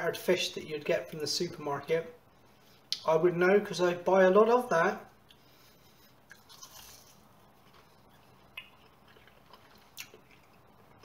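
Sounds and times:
quiet chewing: 5.2s - 11.0s
biting into fried food: 6.2s - 11.0s.

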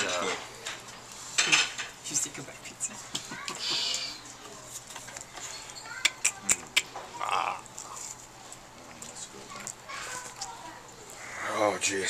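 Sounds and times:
tableware clattering: 0.0s - 2.0s.

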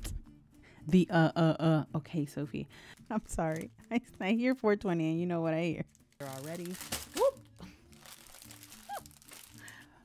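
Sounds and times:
packaging rustling and crinkling: 2.9s - 3.8s, 6.1s - 9.8s.

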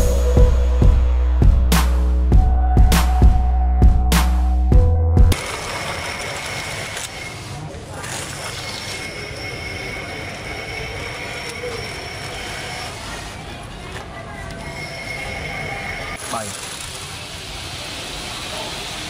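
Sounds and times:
toy wheels rolling on wooden floor: 5.4s - 18.8s
small motor whining: 5.4s - 19.0s.

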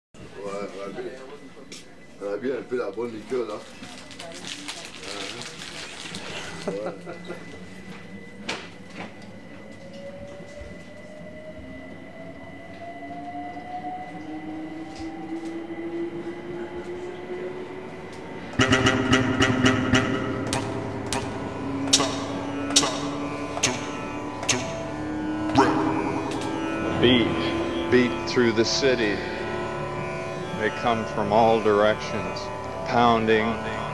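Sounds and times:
electric train motor whine: 0.2s - 33.9s
train running rumble: 4.2s - 33.9s
sampled tones and percussive hits: 18.6s - 31.2s.

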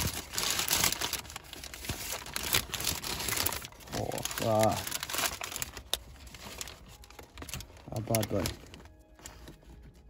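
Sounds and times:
paper wrapper crinkling: 0.0s - 10.0s.

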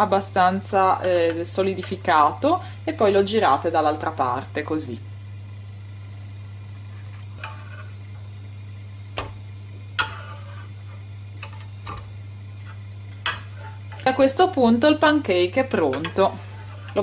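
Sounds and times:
metal spatula tapping frying pan: 10.0s - 10.3s, 13.2s - 14.0s.

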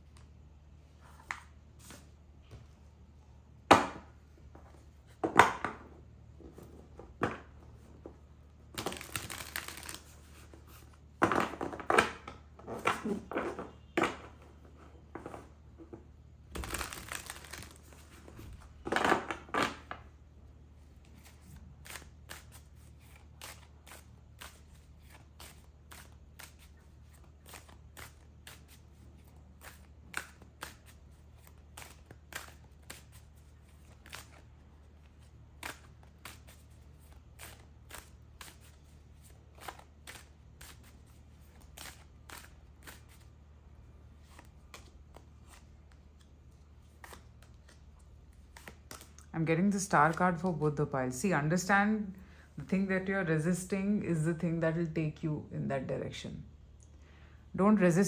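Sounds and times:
cards shuffling: 8.8s - 13.8s, 16.5s - 20.0s, 21.0s - 43.4s, 44.2s - 49.3s.

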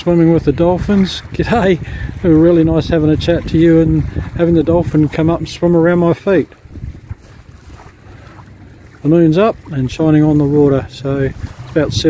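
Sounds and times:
light wind on microphone: 0.0s - 12.0s.

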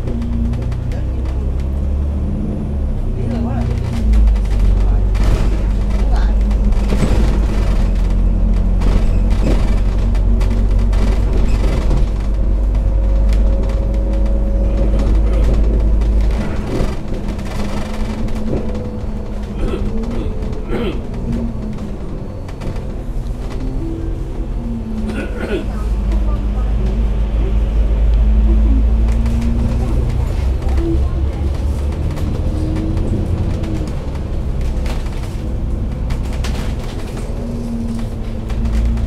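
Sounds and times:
bus engine and road noise: 0.0s - 39.0s.

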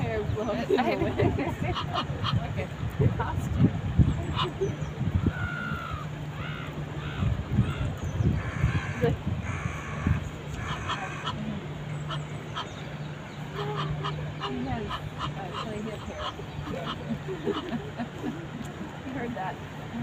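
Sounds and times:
steady low hum: 0.0s - 20.0s
geese honking: 1.6s - 2.7s, 4.2s - 17.9s.

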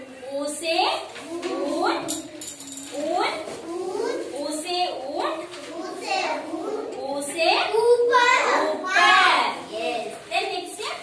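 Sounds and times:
children speaking: 1.0s - 11.0s
woman speaking: 4.4s - 5.5s, 7.0s - 8.0s, 9.4s - 11.0s.

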